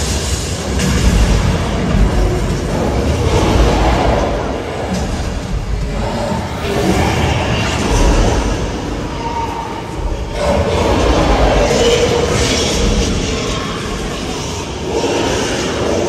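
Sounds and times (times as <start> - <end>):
deep continuous rumble: 0.0 - 16.0
dinosaur roar: 0.0 - 16.0.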